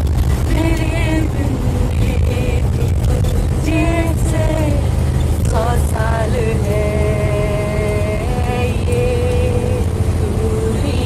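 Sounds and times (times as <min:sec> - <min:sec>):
bus engine running: 0:00.0 - 0:11.0
tyre and road noise: 0:00.0 - 0:11.0.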